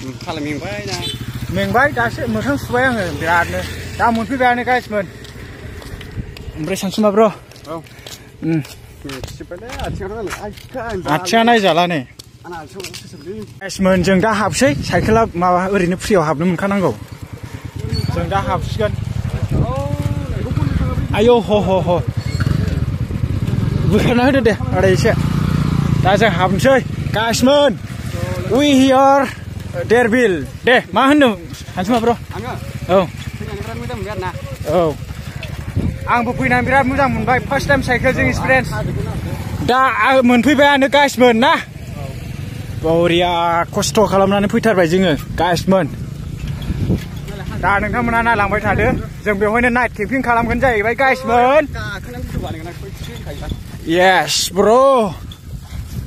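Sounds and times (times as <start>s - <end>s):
people talking: 0.0s - 5.1s, 6.5s - 17.0s, 17.8s - 22.9s, 23.7s - 25.2s, 26.0s - 42.2s, 42.8s - 46.0s, 47.2s - 55.2s
motorcycle engine running: 0.0s - 56.0s
man speaking: 6.5s - 17.1s, 26.0s - 35.1s, 35.8s - 45.9s, 47.3s - 55.2s.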